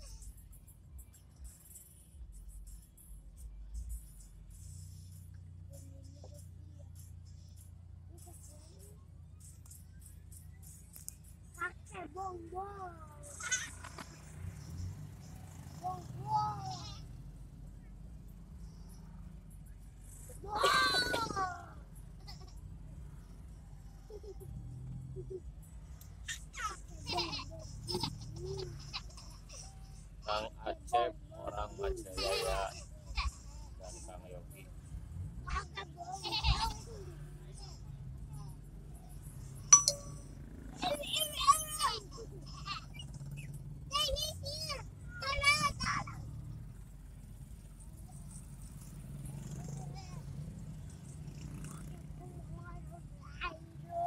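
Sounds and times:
car engine and tyres drone: 0.0s - 41.3s, 42.0s - 53.9s.

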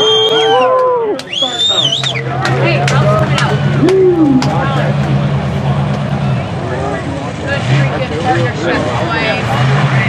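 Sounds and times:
truck engine droning: 0.0s - 10.0s
voices: 0.0s - 10.0s.

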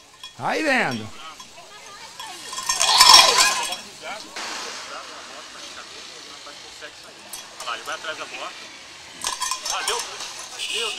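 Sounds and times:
goat bell clanking: 0.0s - 4.2s, 9.2s - 10.9s.

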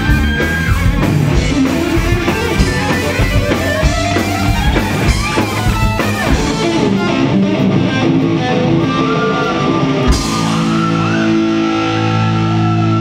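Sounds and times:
heavy metal band playing: 0.0s - 13.0s
lead guitar bent notes: 0.0s - 13.0s.

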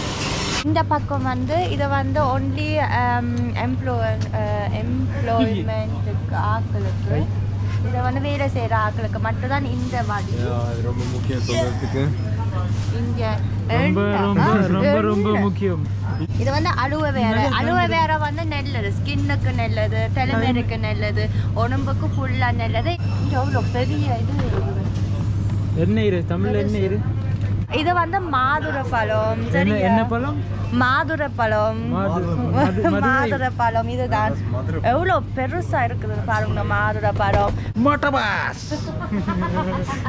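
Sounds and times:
steady low hum: 0.0s - 40.0s
woman speaking: 0.7s - 10.4s, 12.9s - 15.6s, 16.3s - 24.7s, 27.7s - 29.8s, 30.7s - 37.6s
voices: 0.7s - 40.0s.

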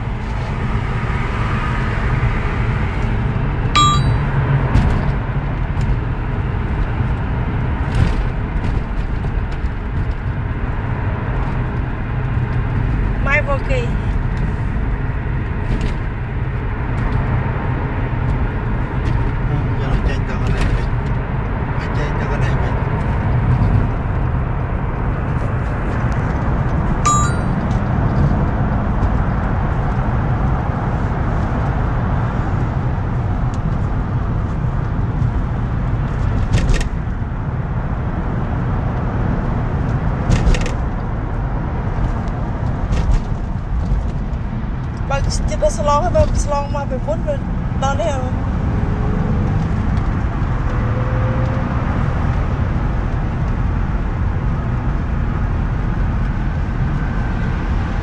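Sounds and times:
car road and engine rumble: 0.0s - 58.0s
short high tone: 3.8s - 4.4s, 27.1s - 27.6s.

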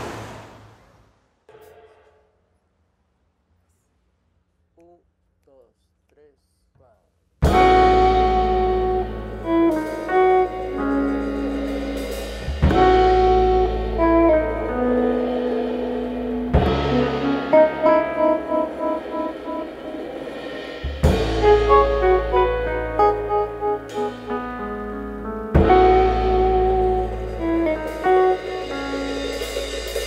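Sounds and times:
upright double bass: 7.4s - 19.2s, 20.8s - 30.0s
keyboard playing jazz: 7.4s - 30.0s.

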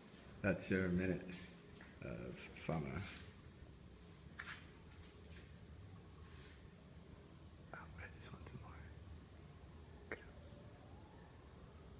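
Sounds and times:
low steady hum: 0.0s - 11.9s
faint whispering: 7.7s - 9.0s, 10.1s - 10.5s.

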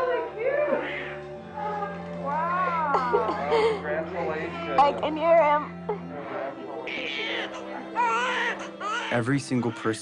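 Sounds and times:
low music drone: 0.0s - 8.0s
baby crying: 0.6s - 3.4s, 6.8s - 10.0s.

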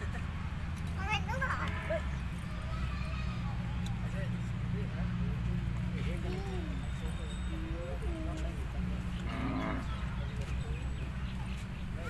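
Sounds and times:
cattle lowing: 9.1s - 10.1s.

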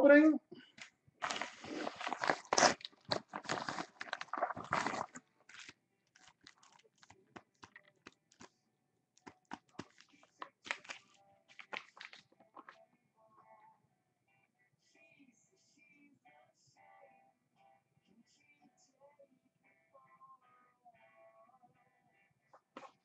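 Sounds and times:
padded mailer tearing and crinkling: 1.2s - 7.7s
foil packs crinkling and clicking: 1.2s - 8.5s, 9.5s - 12.8s.

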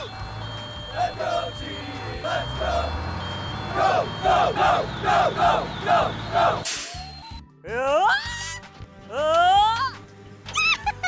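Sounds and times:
high electronic beeping: 0.0s - 7.5s.

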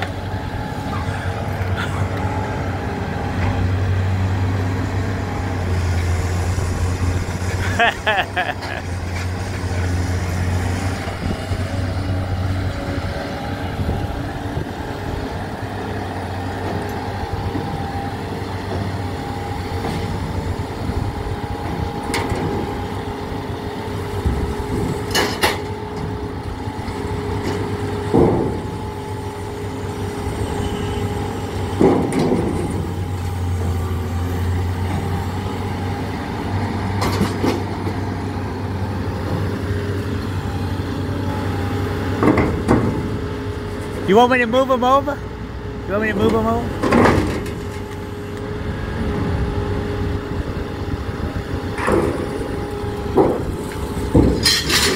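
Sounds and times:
excavator diesel engine running: 0.0s - 54.9s
loud metal clanks: 53.1s - 54.9s.

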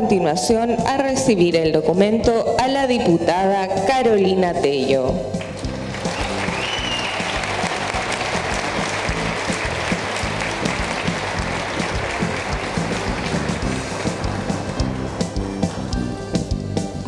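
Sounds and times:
background music: 0.0s - 17.0s
audience applause: 5.4s - 15.8s.

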